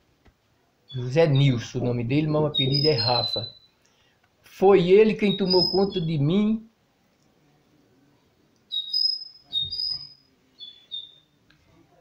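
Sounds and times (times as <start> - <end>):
bird whistling notes: 2.6 - 3.7, 5.3 - 6.1, 8.7 - 11.2.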